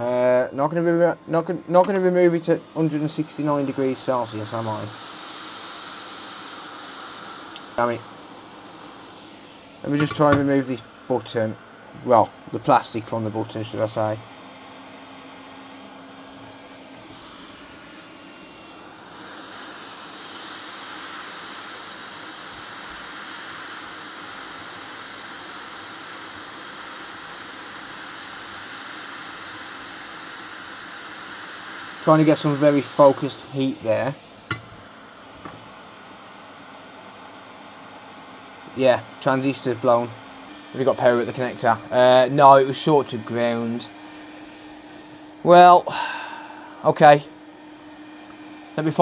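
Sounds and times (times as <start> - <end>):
hot air station airflow hissing: 0.0 - 49.0.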